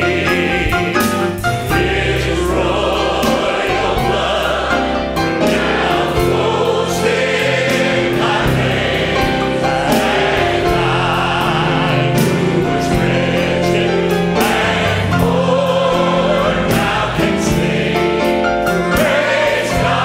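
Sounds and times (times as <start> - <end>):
choir singing a hymn: 0.0 - 20.0
instrumental accompaniment: 0.0 - 20.0.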